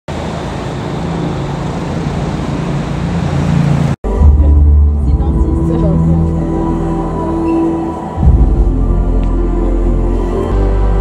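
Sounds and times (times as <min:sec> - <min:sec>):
passing road traffic: 0:00.1 - 0:11.0.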